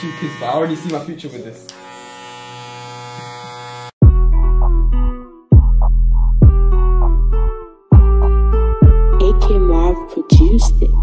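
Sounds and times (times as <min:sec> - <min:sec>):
electric hair clippers buzzing: 0:00.0 - 0:04.0.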